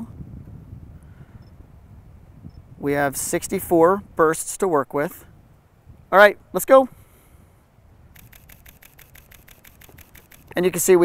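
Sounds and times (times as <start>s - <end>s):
camera shutter burst clicks: 8.1s - 10.6s.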